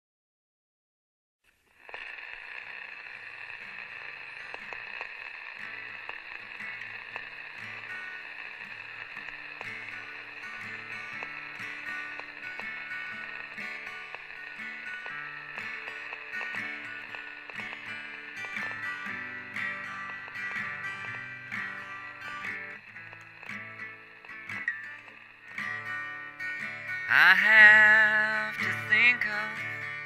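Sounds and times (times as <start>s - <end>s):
high-pitched chirring: 1.9s - 29.8s
acoustic guitar picking: 3.2s - 30.0s.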